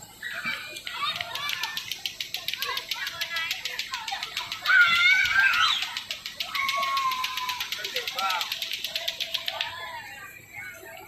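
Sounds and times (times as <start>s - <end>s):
children shouting while playing: 0.0s - 11.0s.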